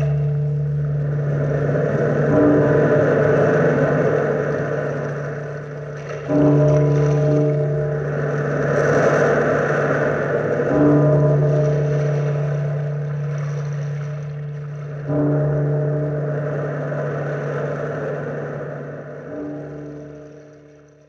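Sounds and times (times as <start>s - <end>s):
surf washing on shore: 0.0s - 20.8s
deep bell tolling: 0.0s - 21.0s.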